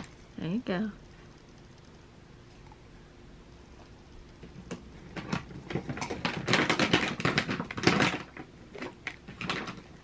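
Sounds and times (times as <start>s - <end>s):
cat crunching dry kibble: 4.3s - 10.0s.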